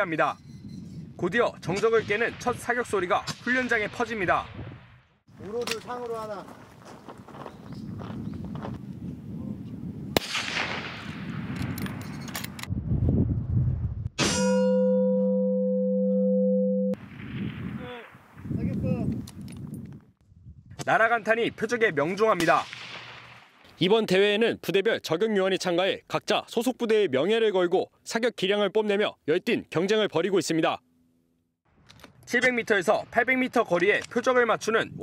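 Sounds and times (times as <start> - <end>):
rifle shot: 10.2 - 12.0, 22.4 - 23.6
steel plate ringing: 14.2 - 15.3.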